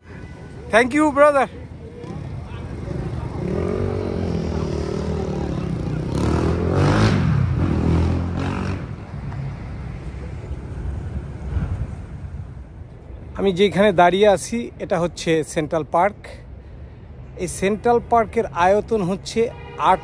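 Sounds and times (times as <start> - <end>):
street noise: 0.0 - 20.0
vehicle engine passing: 1.9 - 12.4.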